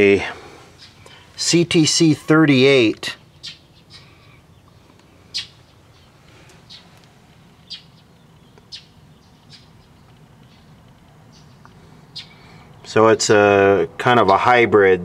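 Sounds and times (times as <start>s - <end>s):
bird chirping: 0.0s - 14.6s
faint background noise: 0.0s - 15.0s.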